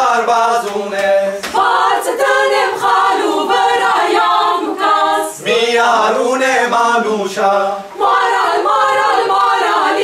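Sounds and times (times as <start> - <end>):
mixed choir singing a cappella: 0.0 - 10.0.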